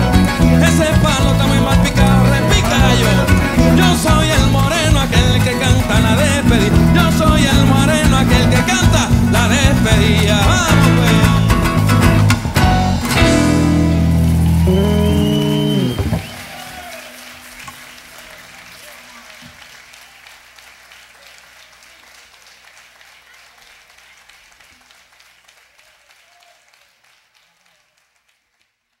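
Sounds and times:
live band final chord: 0.0 - 18.9
audience applause and cheering: 0.0 - 29.0.

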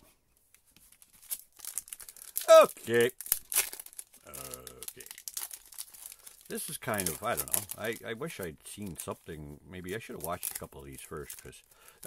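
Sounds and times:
foil wrapper tearing and crinkling: 0.9 - 12.0.

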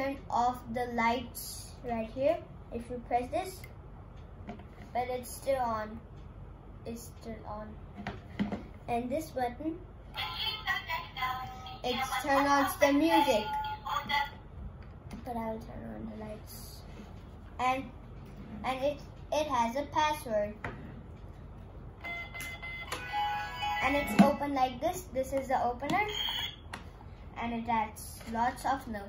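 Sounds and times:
toy playing synthesized tune: 13.1 - 14.2, 22.0 - 24.4, 26.0 - 26.6.

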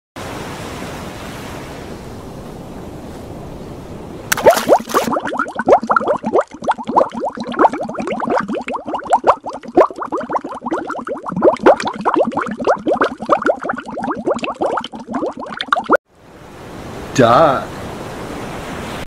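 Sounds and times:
underwater bubbling: 4.3 - 16.0.

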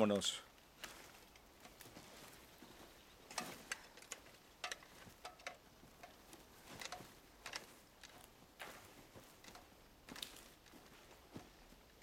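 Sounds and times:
footsteps on twigs and leaves: 0.6 - 12.0.

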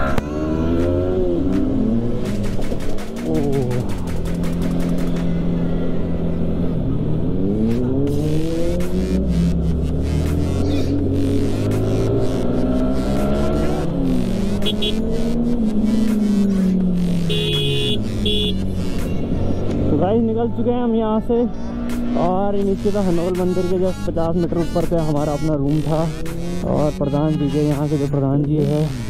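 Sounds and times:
motorcycle engine revving: 0.0 - 20.2, 21.6 - 29.0.

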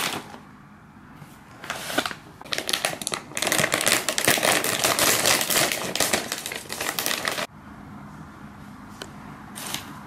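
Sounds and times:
snack bag crinkling: 2.4 - 7.5.

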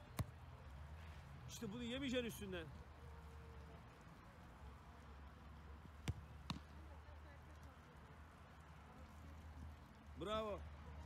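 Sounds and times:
football being kicked: 0.2 - 0.4, 6.0 - 6.7.

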